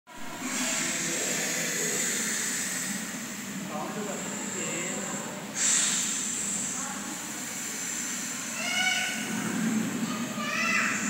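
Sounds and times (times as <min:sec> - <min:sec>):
faint voices: 0:00.2 - 0:11.0
snake hiss sound effect: 0:00.4 - 0:03.4, 0:05.6 - 0:10.0.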